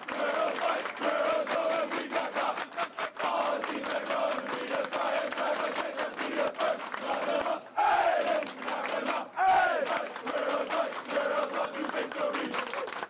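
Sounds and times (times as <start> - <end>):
people clapping: 0.0 - 13.0.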